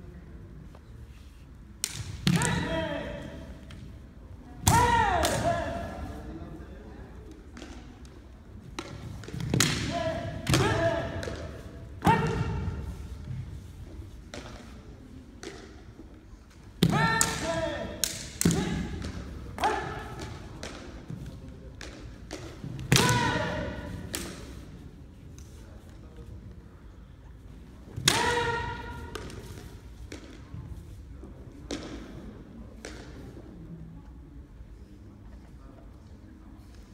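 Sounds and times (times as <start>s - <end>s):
high shouted kiai: 4.6s - 6.1s, 9.8s - 12.9s, 16.8s - 18.9s, 19.6s - 20.2s, 22.9s - 24.0s, 28.0s - 29.3s
bamboo sticks striking: 7.5s - 15.9s, 16.5s - 24.6s, 28.0s - 30.4s.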